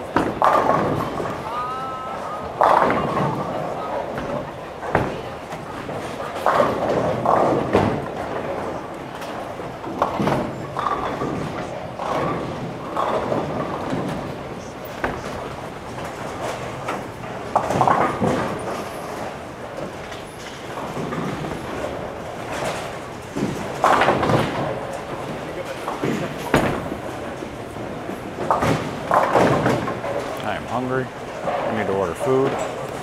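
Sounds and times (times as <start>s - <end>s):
bowling balls knocking pins: 0.0s - 33.0s.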